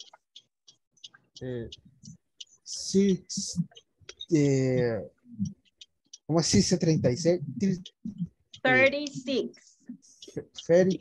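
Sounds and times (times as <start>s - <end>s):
faint clicks: 0.0s - 11.0s
person speaking over video call: 1.3s - 11.0s.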